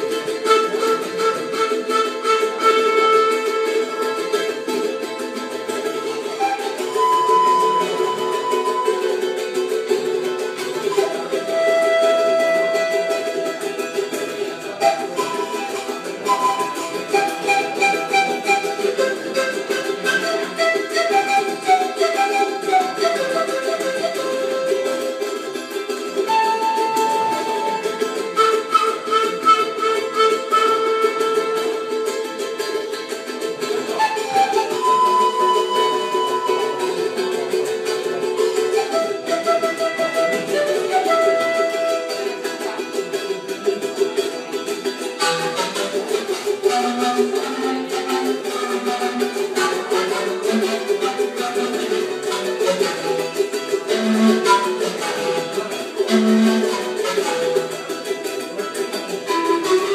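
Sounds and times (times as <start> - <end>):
plucked string instrument melody: 0.0 - 59.9.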